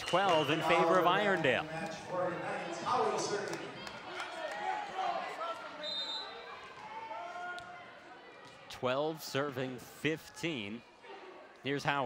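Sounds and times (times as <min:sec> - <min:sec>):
voices echoing in gym hall: 0:00.0 - 0:12.0
referee's whistle: 0:05.8 - 0:06.5.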